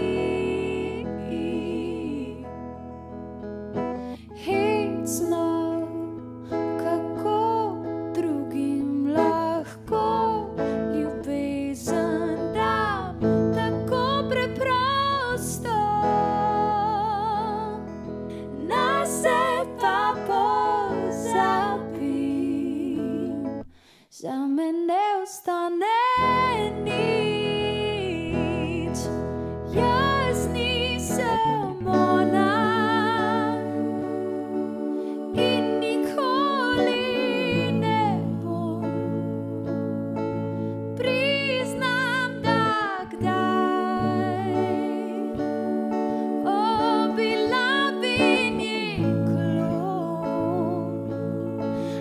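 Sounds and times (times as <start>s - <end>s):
woman singing wordless notes: 0.0s - 2.8s, 4.3s - 17.8s, 18.4s - 52.0s
plucked strings: 0.0s - 23.7s, 26.2s - 52.0s
woman singing a long note: 29.7s - 39.7s, 46.4s - 51.6s.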